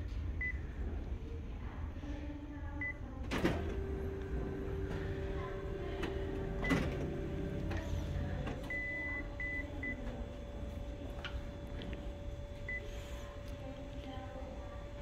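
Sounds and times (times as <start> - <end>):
photocopier hum: 0.0 - 15.0
touchscreen beeps: 8.6 - 10.0.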